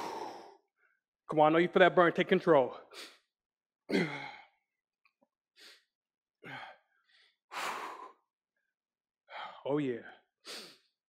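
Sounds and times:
man breathing hard: 0.0 - 1.0, 2.7 - 3.3, 5.5 - 8.3, 9.3 - 11.0.

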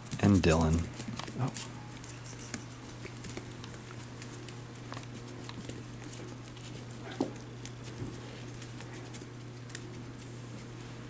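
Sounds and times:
puppy claws clicking on tiles: 0.0 - 10.3
low steady hum: 0.0 - 11.0.

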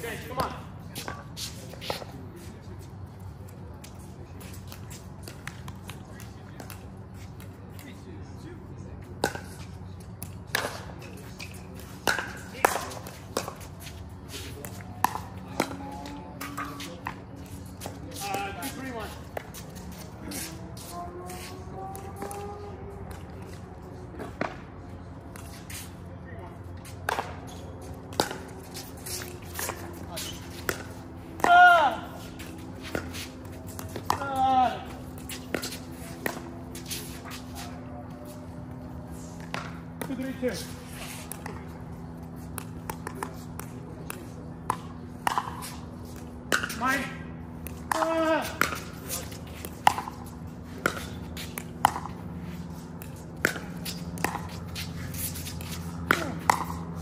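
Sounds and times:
steady low hum: 0.0 - 57.0
paddles hitting plastic ball: 29.5 - 36.5, 47.6 - 57.0
players shouting: 31.4 - 32.2, 47.9 - 48.8.

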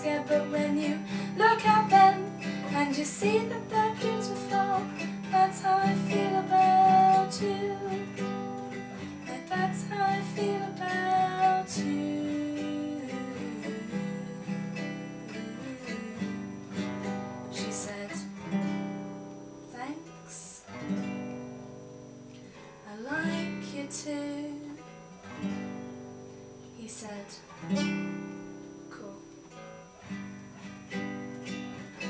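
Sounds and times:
classical guitar playing: 0.0 - 32.0.

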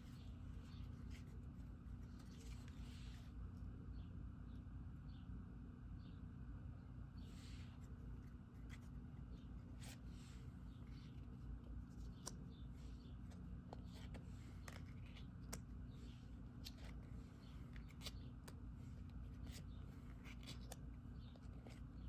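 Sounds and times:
cards sliding on cards: 0.0 - 3.4, 7.2 - 21.9.

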